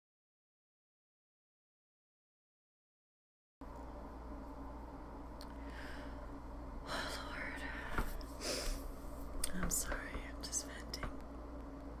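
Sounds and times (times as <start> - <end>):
low electrical hum: 3.6 - 12.0
woman whispering: 6.8 - 8.1, 9.4 - 11.1.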